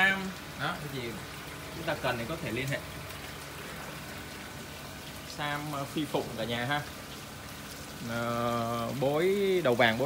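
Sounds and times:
water trickling through filters: 0.0s - 10.0s.

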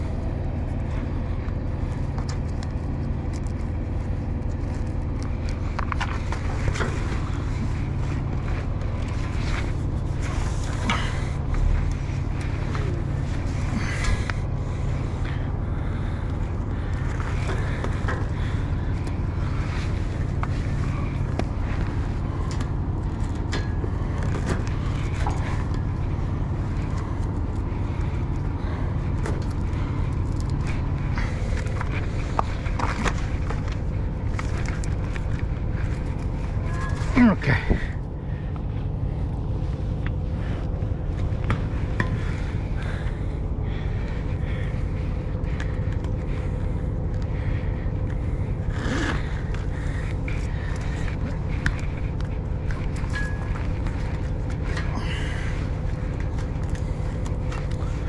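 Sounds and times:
diesel engine idling: 0.0s - 58.0s.

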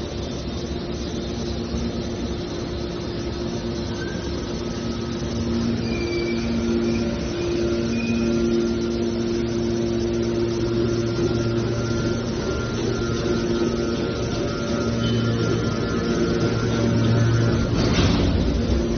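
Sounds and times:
hydraulic machine hum: 0.0s - 18.9s
low held tones: 0.0s - 18.9s.

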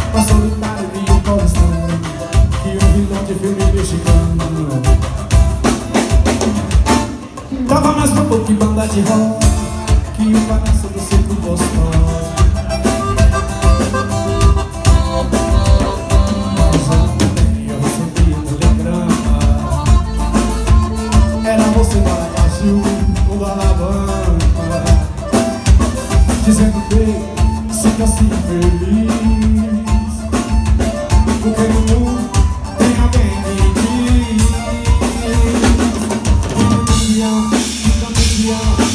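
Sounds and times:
accordion holding notes: 0.0s - 38.9s
acoustic guitar: 0.0s - 38.9s
bass: 0.0s - 38.9s
drum kit steady beat: 0.0s - 38.9s.

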